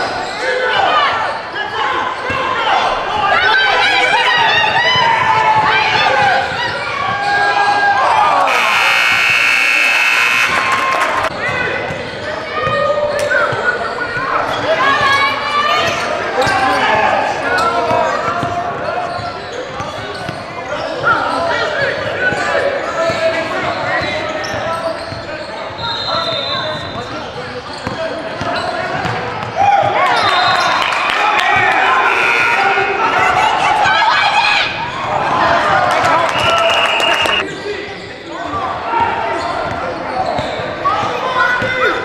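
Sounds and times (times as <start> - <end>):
harsh buzzer: 8.4 - 11.3, 31.9 - 33.2
people calling out: 8.4 - 11.3, 31.6 - 35.0.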